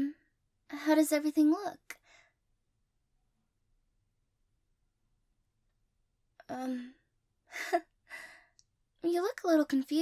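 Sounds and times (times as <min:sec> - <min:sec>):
soft breath: 0:02.0 - 0:02.4, 0:08.1 - 0:08.6.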